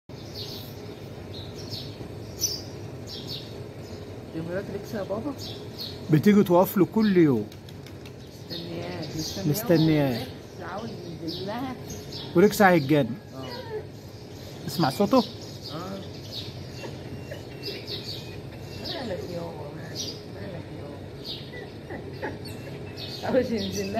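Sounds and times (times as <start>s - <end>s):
low steady hum: 0.1s - 23.9s
small birds chirping: 0.1s - 23.9s.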